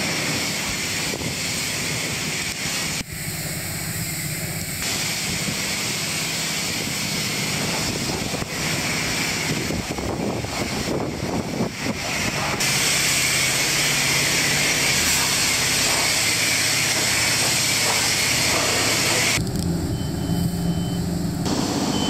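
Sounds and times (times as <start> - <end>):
pressure washer spraying water: 0.0 - 22.0
steady low hum: 2.8 - 9.0, 17.2 - 22.0
thin high tone: 3.0 - 5.0.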